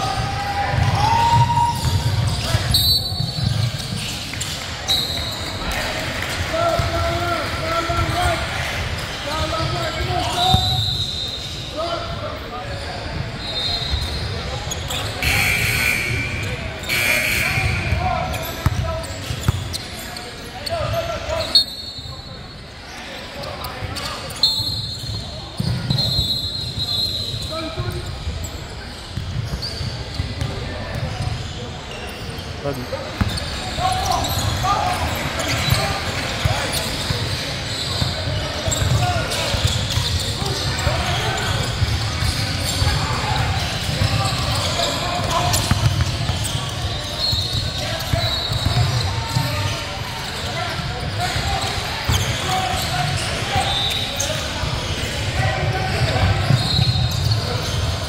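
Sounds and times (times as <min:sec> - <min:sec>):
sneakers squeaking: 0:00.0 - 0:58.0
voices calling out: 0:13.5 - 0:22.1
ball bouncing on hardwood court: 0:18.6 - 0:19.7, 0:25.6 - 0:26.1, 0:45.5 - 0:46.6.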